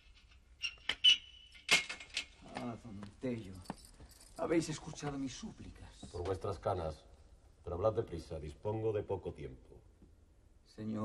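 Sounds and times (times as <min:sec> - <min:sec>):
man speaking: 0:04.4 - 0:07.0.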